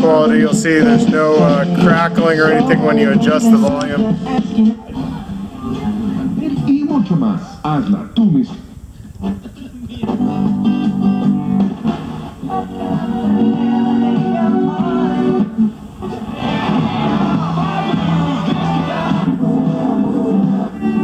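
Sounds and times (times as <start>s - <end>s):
guitar music on car radio: 0.0s - 6.9s, 9.2s - 21.0s.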